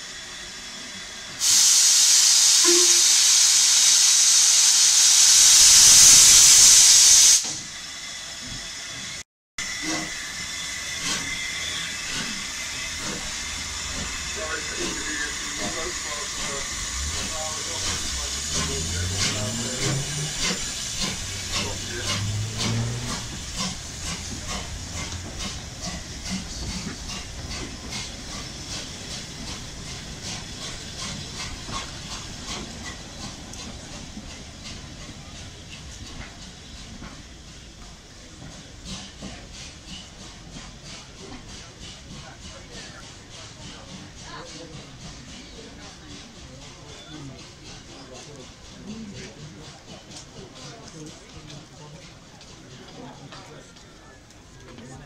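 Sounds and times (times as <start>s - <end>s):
regular clicks of moving train: 0.0s - 55.0s
steam locomotive hissing: 0.0s - 55.0s.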